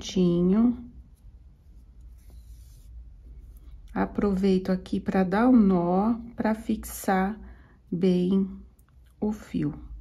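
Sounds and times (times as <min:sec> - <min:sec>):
yarn rustling through knitted fabric: 0:00.9 - 0:03.7.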